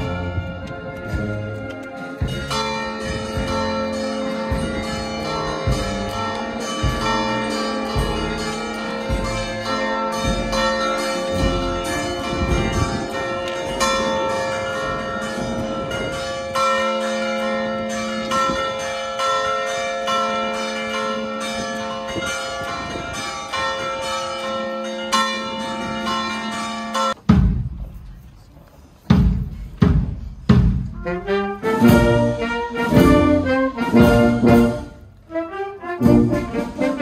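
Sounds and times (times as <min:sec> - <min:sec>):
low thumps: 0:00.0 - 0:13.9
church bells ringing: 0:00.0 - 0:27.3, 0:31.0 - 0:35.2.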